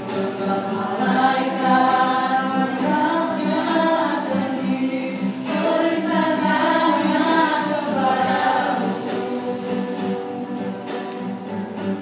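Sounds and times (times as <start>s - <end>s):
group of voices singing: 0.0s - 10.8s
strummed acoustic guitar: 0.0s - 12.0s.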